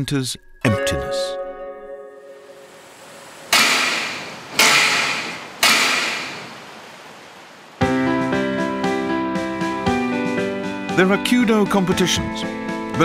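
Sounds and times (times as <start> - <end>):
background music: 0.0 - 2.8, 7.8 - 13.0
sharp ringing impacts: 3.5 - 6.6.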